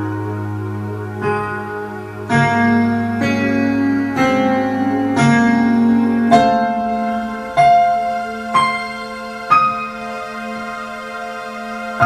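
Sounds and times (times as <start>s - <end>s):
low bass note: 0.0s - 12.0s
piano melody: 0.0s - 12.0s.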